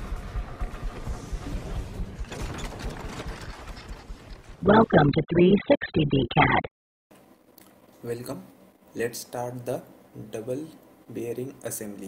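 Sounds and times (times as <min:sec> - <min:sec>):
low rumble: 0:00.0 - 0:06.7
clattering: 0:02.2 - 0:04.6.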